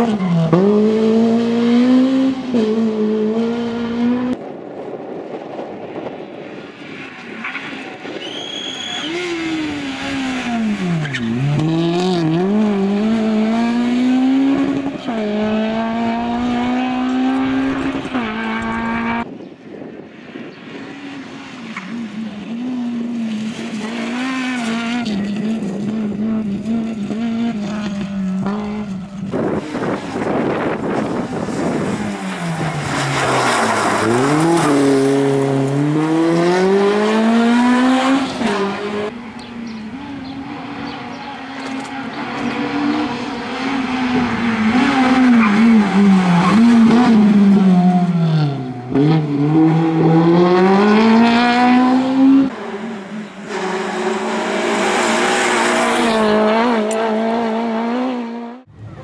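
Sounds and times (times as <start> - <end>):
car engine revving hard: 0.0 - 4.4, 9.1 - 19.3, 22.4 - 39.2, 42.3 - 58.7.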